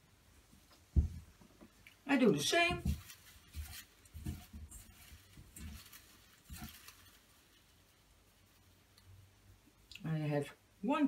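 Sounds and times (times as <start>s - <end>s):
soft low bumps: 0.6s - 1.8s, 2.6s - 7.2s.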